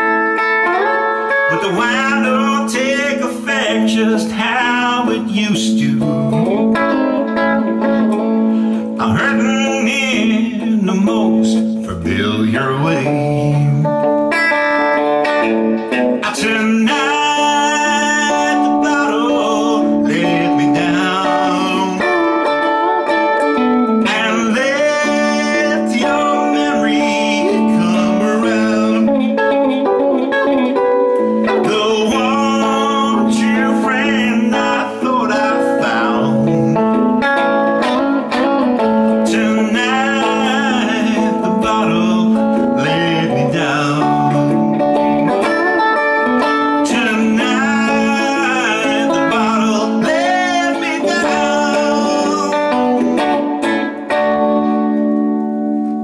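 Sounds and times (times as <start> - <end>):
electric guitar solo: 0.0 - 56.0.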